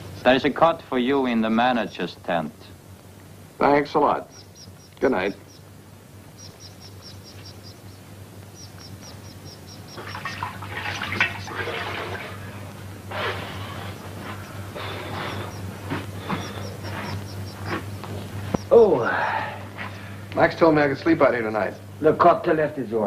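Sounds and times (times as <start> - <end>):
steady low hum: 0.0 - 23.0
water splashing in a washbasin: 10.0 - 12.6.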